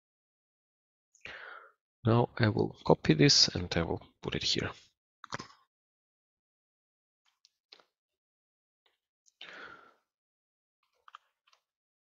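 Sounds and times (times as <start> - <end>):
computer mouse and key clicks: 5.2 - 5.6.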